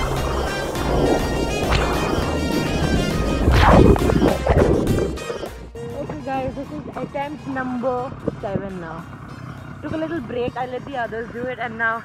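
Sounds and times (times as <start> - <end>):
rushing splashing water: 0.0 - 5.5
background music: 0.0 - 12.0.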